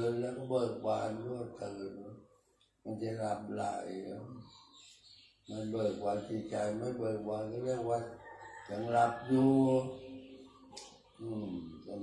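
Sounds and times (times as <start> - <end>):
man chanting into microphone: 8.7 - 10.0.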